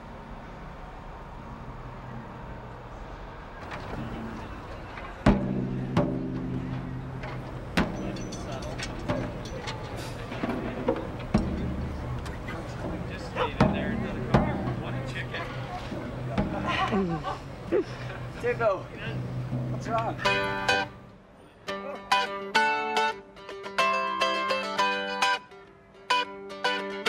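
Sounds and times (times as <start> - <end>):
low ringing bass notes: 4.0 - 21.1
single drum hits: 5.2 - 16.8.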